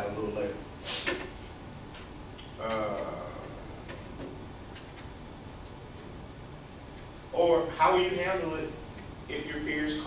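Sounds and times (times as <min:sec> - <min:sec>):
classroom room noise: 0:00.0 - 0:10.0.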